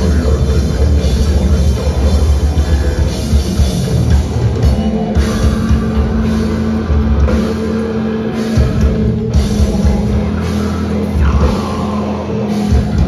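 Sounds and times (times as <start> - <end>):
distorted guitars: 0.0 - 13.0
drums: 0.0 - 13.0
hardcore band playing live: 0.0 - 13.0.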